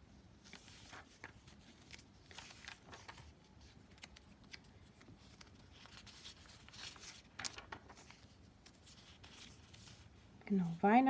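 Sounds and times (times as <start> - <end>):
paper pages rustling and turning: 0.3 - 10.3.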